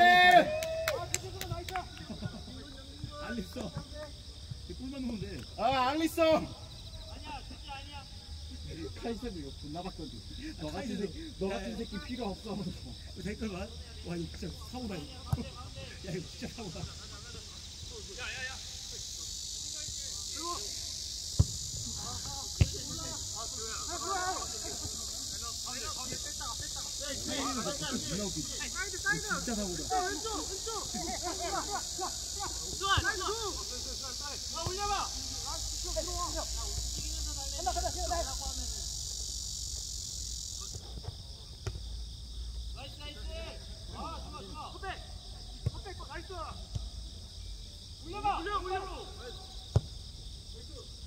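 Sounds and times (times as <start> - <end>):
players shouting: 0.0 - 1.8, 21.9 - 26.3, 26.9 - 38.4
cicadas buzzing: 0.0 - 51.0
ball being kicked: 21.4 - 22.8.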